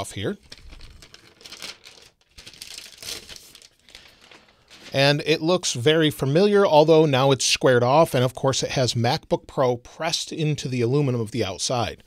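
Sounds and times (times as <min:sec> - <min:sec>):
paper rustling and crinkling: 0:00.4 - 0:05.0.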